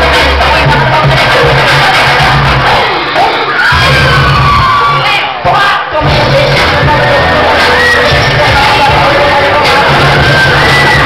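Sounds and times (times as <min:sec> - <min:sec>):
crowd cheering and shouting: 0:00.0 - 0:11.0
dance music with heavy bass: 0:00.0 - 0:11.0.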